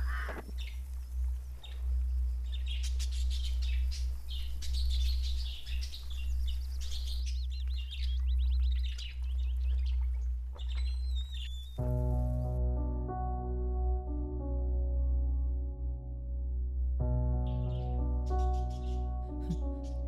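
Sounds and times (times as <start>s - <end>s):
birds chirping and trilling: 0.0s - 12.6s, 17.4s - 20.0s
steady low rumble: 0.0s - 17.4s
soft music: 0.6s - 20.0s.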